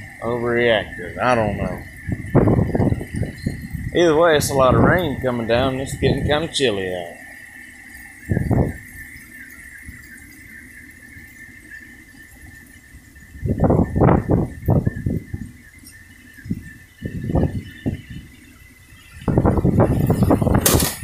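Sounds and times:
steady high tone: 0.0s - 18.3s
heavy rain: 0.0s - 21.0s.

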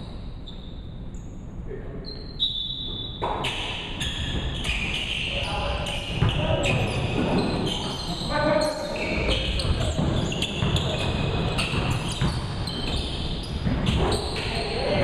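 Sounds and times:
sneakers squeaking: 2.0s - 15.0s
basketball bouncing: 9.3s - 14.5s.

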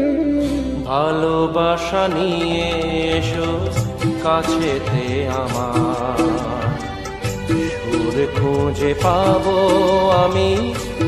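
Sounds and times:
instrumental film song music: 0.0s - 11.0s.

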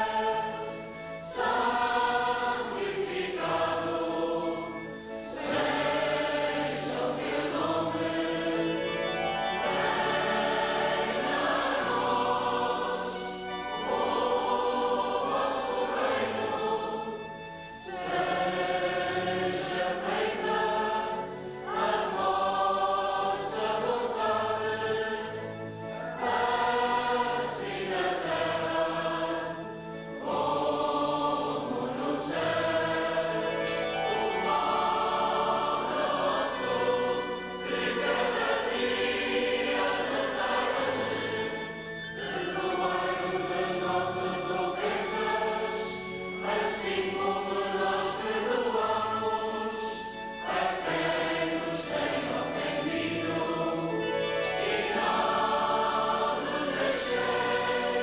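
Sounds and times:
choir chanting: 0.0s - 58.0s.

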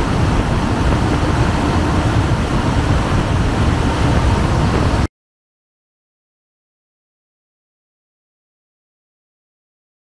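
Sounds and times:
rush of wind: 0.0s - 5.1s
turboprop engine noise: 0.0s - 5.1s.

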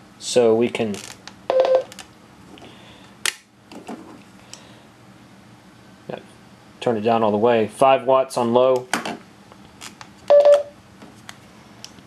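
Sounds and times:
radio key beep: 10.3s - 10.7s.

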